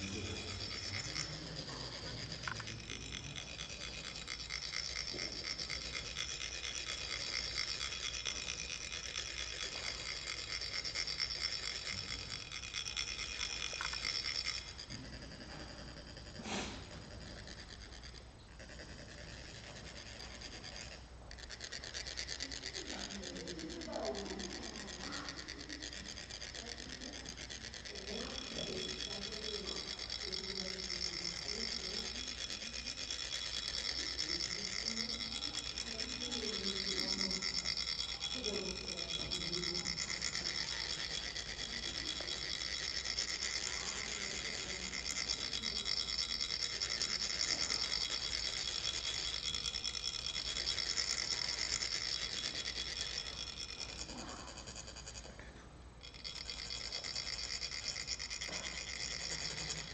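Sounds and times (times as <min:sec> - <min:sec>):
low voices: 0:00.0 - 0:17.2
metal rods rasping metal funnels: 0:00.0 - 0:59.9.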